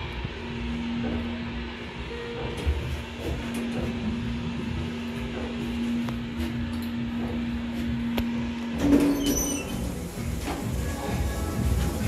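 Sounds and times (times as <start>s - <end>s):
lift humming: 0.0s - 12.0s
lift doors sliding open: 8.7s - 12.0s.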